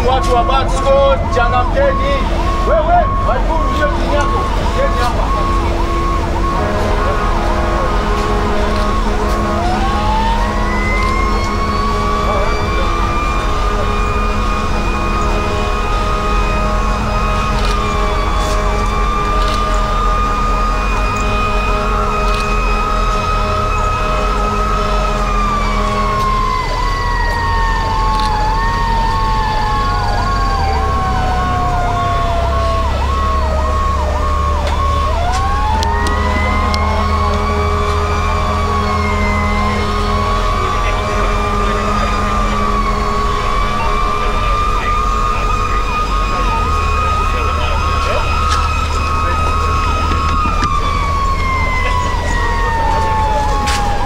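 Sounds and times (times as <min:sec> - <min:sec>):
fast warbling siren: 0:00.0 - 0:54.0
low engine drone: 0:00.0 - 0:54.0
wailing siren: 0:00.0 - 0:54.0.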